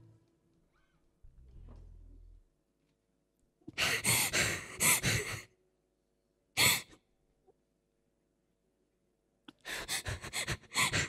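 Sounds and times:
girl sobbing breath: 3.8 - 5.5, 9.6 - 11.0.

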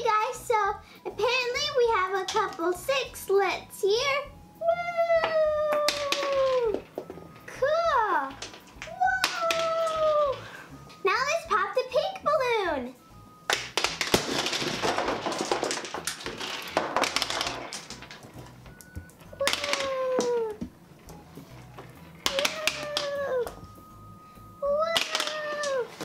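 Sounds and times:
toys and candy clattering: 1.0 - 3.4, 5.1 - 12.0, 13.5 - 24.0, 24.6 - 26.0
balloon popping: 13.5 - 21.2, 22.2 - 23.7.

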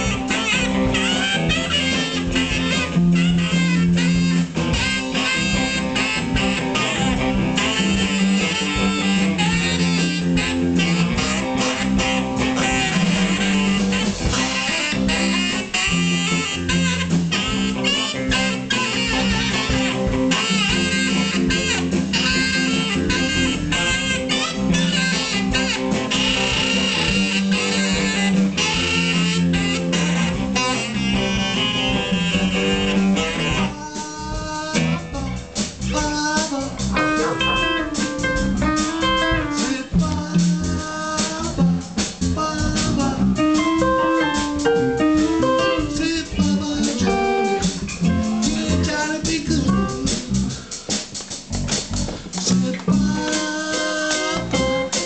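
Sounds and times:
blues band playing: 0.0 - 55.0
electric guitar: 0.0 - 55.0
saxophone: 0.0 - 55.0.

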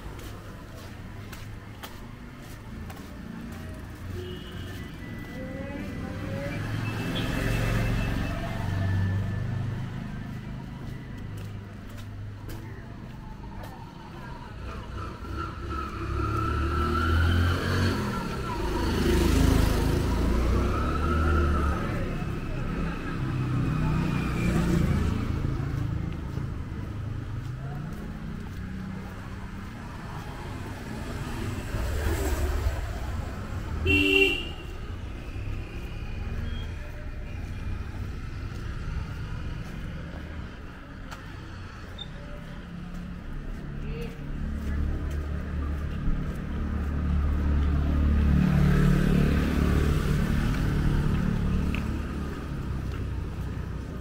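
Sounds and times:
cars and motorcycles passing: 0.0 - 54.0
car horn toot: 33.8 - 34.7.

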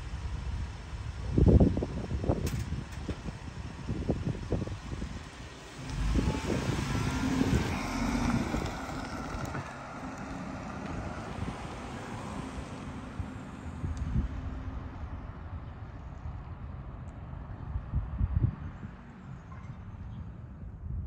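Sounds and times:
van engine driving off: 1.4 - 13.9.

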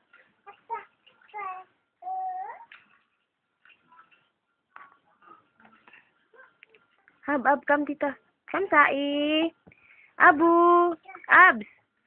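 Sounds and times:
baby babbling: 0.5 - 2.7.

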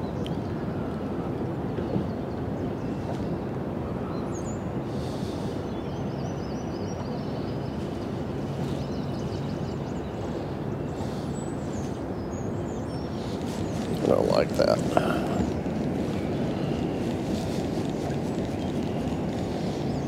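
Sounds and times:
wind: 0.0 - 20.0.

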